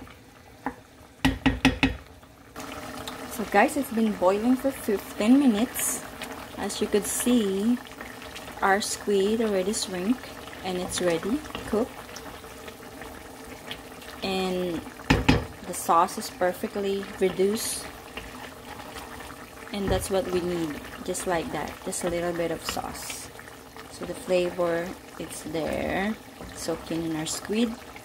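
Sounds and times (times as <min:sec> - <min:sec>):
sauce bubbling in a pot: 0:00.0 - 0:28.0
spoon knocking on pan: 0:00.6 - 0:02.0, 0:15.1 - 0:15.5.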